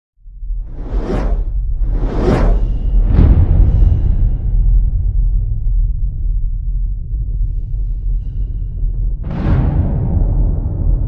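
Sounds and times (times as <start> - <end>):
deep low rumble: 0.2 - 11.0
whoosh sound effects: 0.7 - 3.1.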